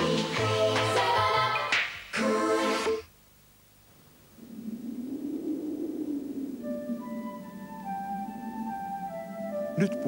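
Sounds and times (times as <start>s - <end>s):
low wavering drone: 4.4s - 10.0s.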